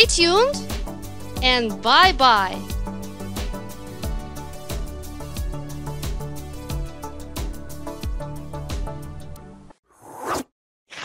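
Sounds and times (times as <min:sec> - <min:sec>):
background music: 0:00.0 - 0:09.7
short swish: 0:10.0 - 0:11.0.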